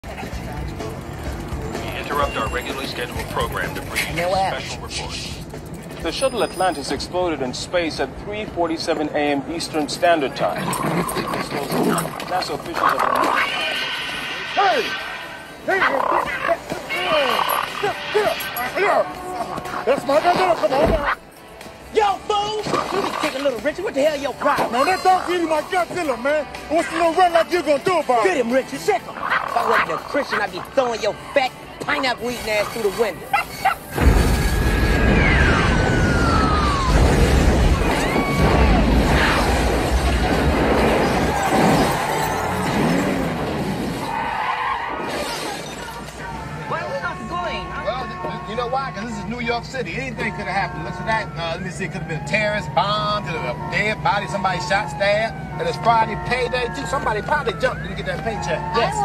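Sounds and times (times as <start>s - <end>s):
city street noise: 0.0s - 59.0s
dog growling: 10.5s - 13.9s
debris and breaking glass clattering: 36.9s - 43.9s.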